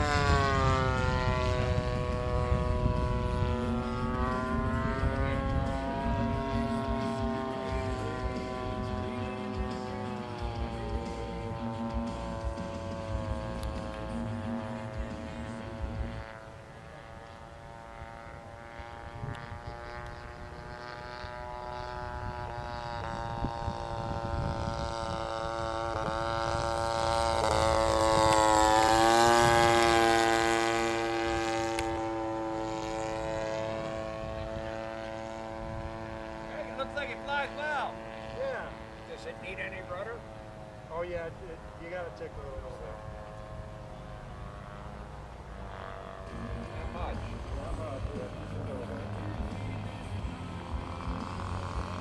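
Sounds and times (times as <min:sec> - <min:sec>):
model plane engine flying past: 0:00.0 - 0:52.0.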